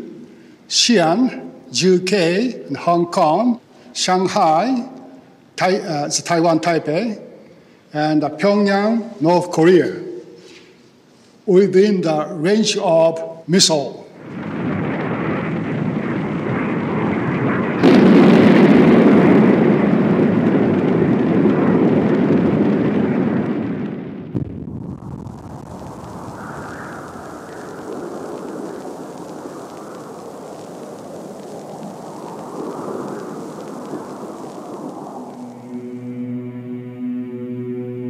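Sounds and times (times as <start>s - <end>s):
deep rumble of explosion: 14.1s - 35.9s.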